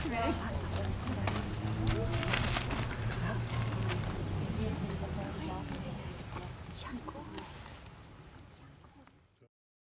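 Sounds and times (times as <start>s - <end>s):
people talking outdoors: 0.0s - 9.5s.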